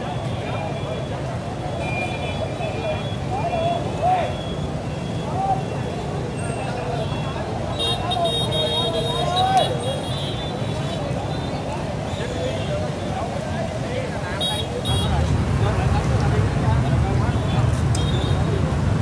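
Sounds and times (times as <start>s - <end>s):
street traffic rumble: 0.0s - 19.0s.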